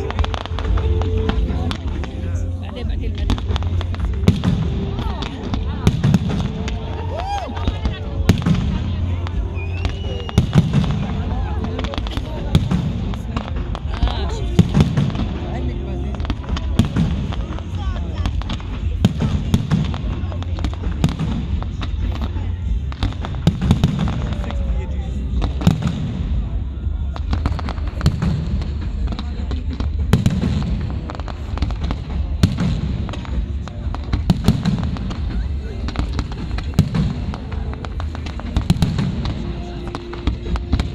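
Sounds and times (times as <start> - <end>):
fireworks bursting: 0.0 - 40.9.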